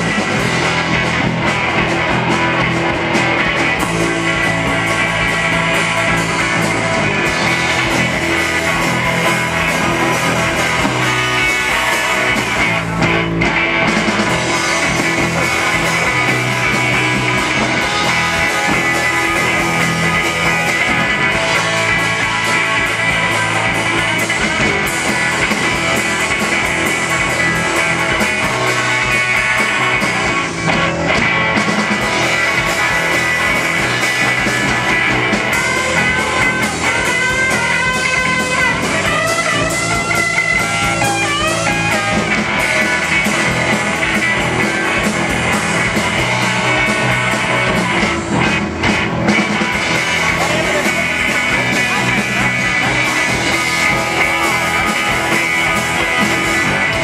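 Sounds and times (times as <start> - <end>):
bending lead guitar line: 0.0 - 57.0
live rock band playing: 0.0 - 57.0.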